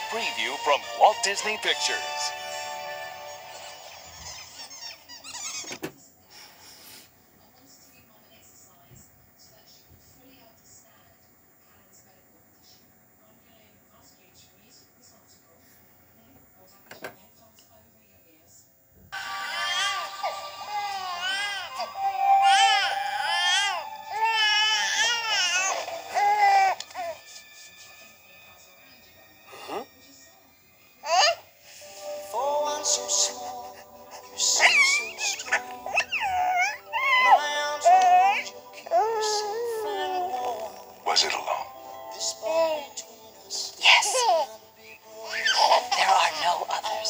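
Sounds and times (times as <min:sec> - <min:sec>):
held music chord: 0:00.0 - 0:03.7, 0:20.0 - 0:25.8
soft held music: 0:00.0 - 0:47.0
baby crying: 0:19.2 - 0:27.2, 0:31.0 - 0:31.4, 0:33.3 - 0:41.6, 0:42.4 - 0:43.0, 0:43.9 - 0:44.6, 0:45.2 - 0:46.8.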